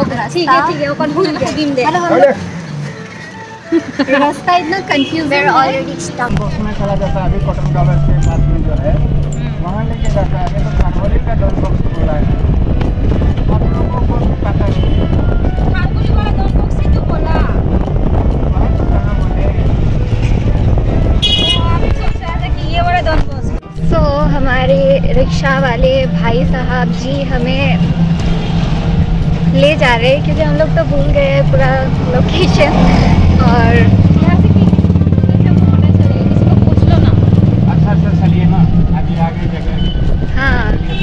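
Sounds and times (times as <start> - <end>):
street traffic: 0.0 - 41.0
wind and road rumble: 0.0 - 41.0
voices: 13.4 - 28.1, 29.4 - 41.0
short high horn toot: 21.2 - 21.9.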